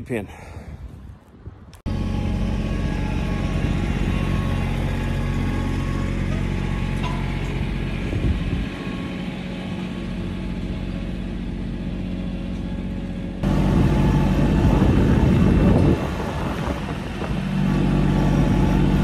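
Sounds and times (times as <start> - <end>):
tractor engine running: 1.8 - 19.0.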